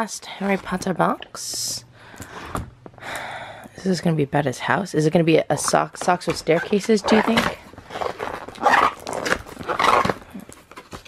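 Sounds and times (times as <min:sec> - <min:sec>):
plastic packaging crinkling: 0:06.7 - 0:11.0.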